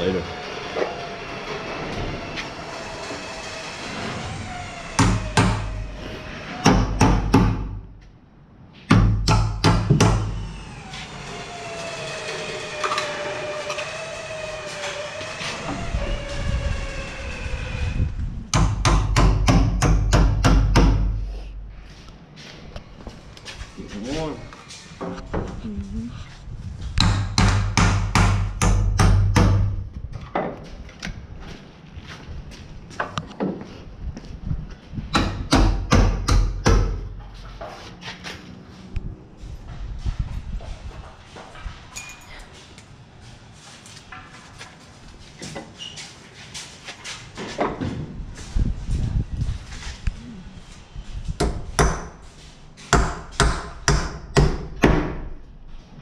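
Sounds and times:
hammer driving nails into wood: 6.6 - 7.8, 8.9 - 10.4, 18.5 - 21.2, 27.0 - 29.7, 35.1 - 37.1, 52.9 - 55.2.

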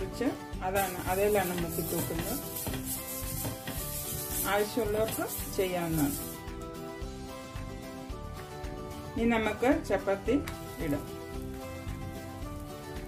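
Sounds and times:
background music: 0.0 - 13.0
oil sizzling on a hot pan: 0.8 - 6.4.

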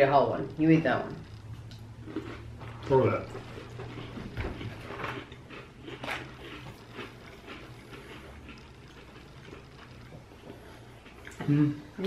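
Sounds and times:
cookies being chewed: 0.0 - 12.0
steady low hum: 0.0 - 12.0.

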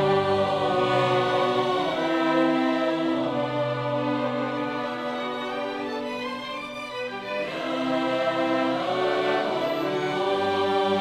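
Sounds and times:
mixed choir singing: 0.0 - 6.2, 6.9 - 11.0.

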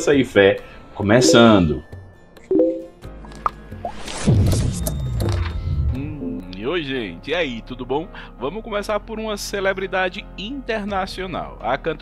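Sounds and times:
pitched blips: 1.2 - 1.8, 2.5 - 2.9.

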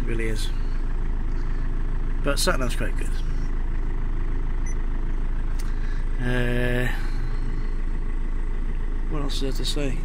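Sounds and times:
diesel engine idling: 0.0 - 10.0.

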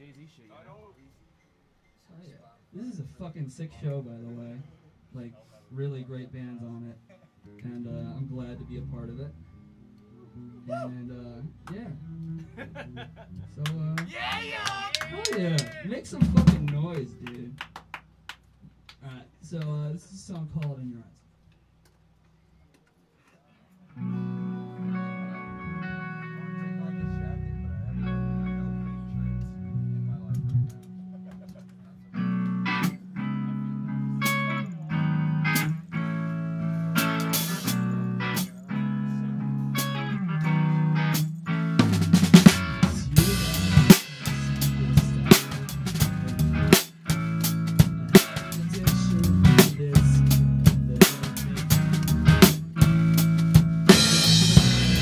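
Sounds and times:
guitar chords: 7.8 - 14.0, 23.9 - 55.0
drum kit with cymbals: 16.1 - 16.8, 36.8 - 38.5, 41.0 - 55.0
rock band playing loud: 32.2 - 55.0.

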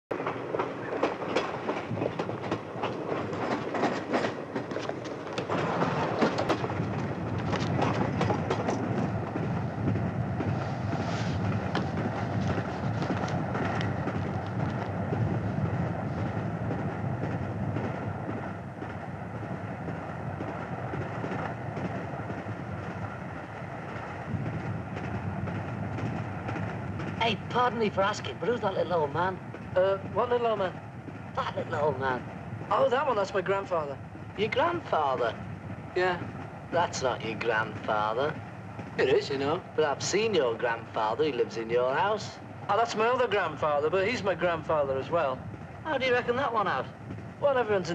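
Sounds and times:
train rumble with clattering wheels: 0.1 - 47.9.

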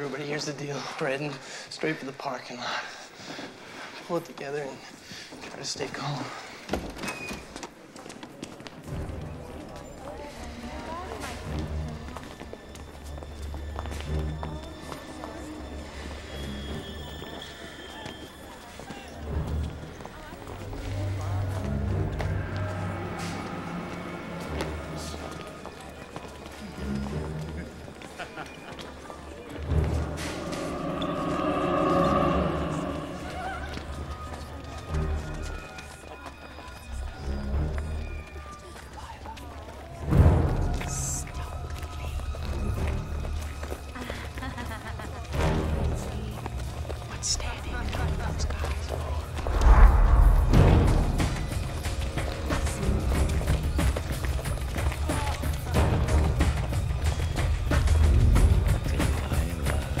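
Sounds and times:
voice over music: 29.6 - 34.6
film music with bass pulse: 49.3 - 54.4.

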